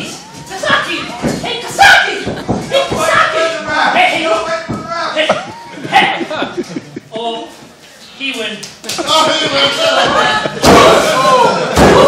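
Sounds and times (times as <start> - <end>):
people shouting: 0.0 - 6.2, 9.7 - 12.0.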